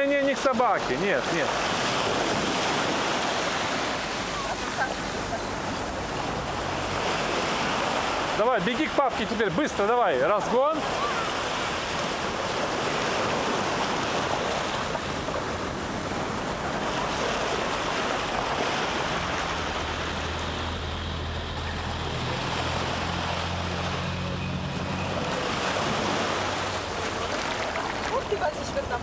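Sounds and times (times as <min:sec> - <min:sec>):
small waves breaking on sand: 0:00.0 - 0:29.0.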